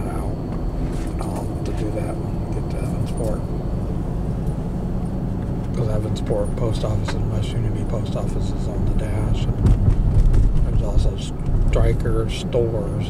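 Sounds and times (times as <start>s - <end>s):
car engine: 0.0s - 13.0s
road rumble: 0.0s - 13.0s.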